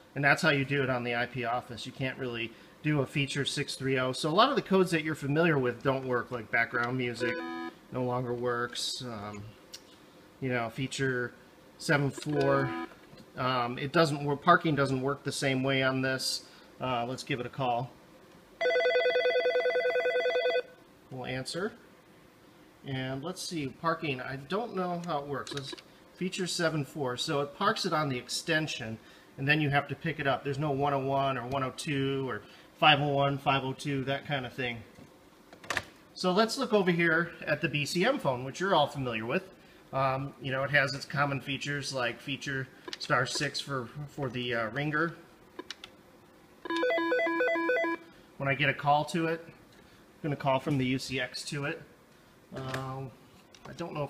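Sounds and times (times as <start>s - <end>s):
desk phone ringing: 7.2s - 7.8s, 12.3s - 13.0s, 18.6s - 20.7s, 46.7s - 48.1s.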